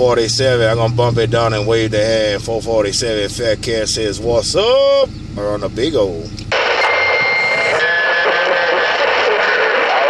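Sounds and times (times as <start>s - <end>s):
radio static: 6.5s - 10.0s.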